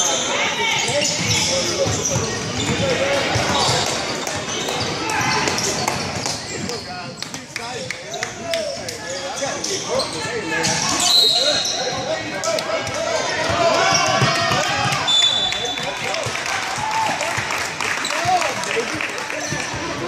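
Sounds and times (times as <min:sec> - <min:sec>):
players and spectators shouting: 0:00.0 - 0:06.2, 0:08.4 - 0:20.0
basketball bouncing on court: 0:00.8 - 0:06.8, 0:12.8 - 0:15.5.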